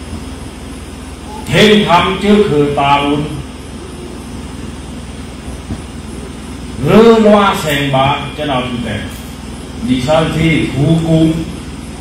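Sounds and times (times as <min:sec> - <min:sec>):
low background rumble: 0:00.0 - 0:12.0
man speaking into microphone: 0:01.4 - 0:03.5, 0:06.8 - 0:09.2, 0:09.8 - 0:11.6.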